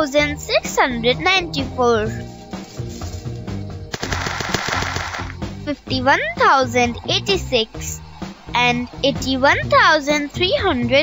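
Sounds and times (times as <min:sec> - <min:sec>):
light background music: 0:00.0 - 0:11.0
fizzing rattle of fast clicks: 0:04.0 - 0:05.3.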